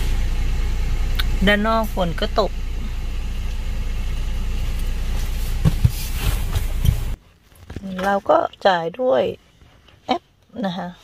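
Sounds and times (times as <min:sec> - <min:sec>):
car engine idling: 0:00.0 - 0:07.2.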